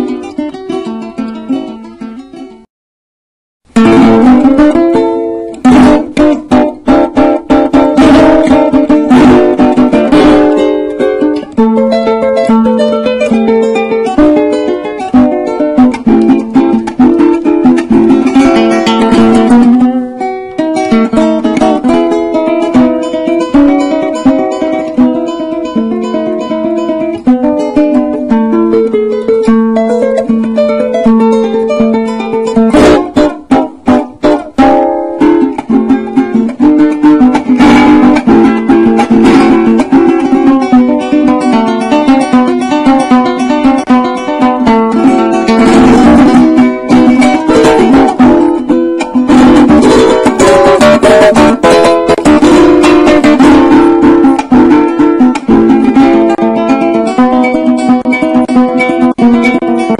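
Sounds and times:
plucked and strummed small guitar: 0:00.0 - 0:02.7, 0:03.7 - 0:59.9.

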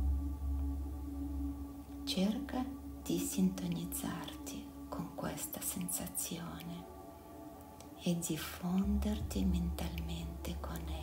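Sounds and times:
soft ambient music: 0:00.0 - 0:11.0
person whispering: 0:08.1 - 0:11.0.

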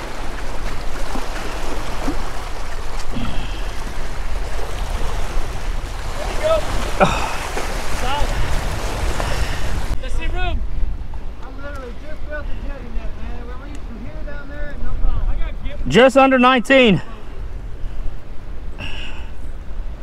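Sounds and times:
surf splashing against rocks: 0:00.0 - 0:10.3.

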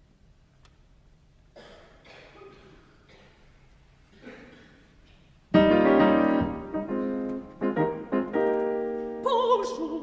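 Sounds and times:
solo piano chords: 0:05.6 - 0:09.3.

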